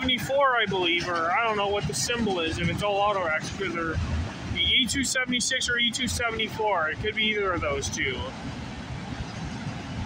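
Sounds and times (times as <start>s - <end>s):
freight train rolling past: 0.0s - 10.0s.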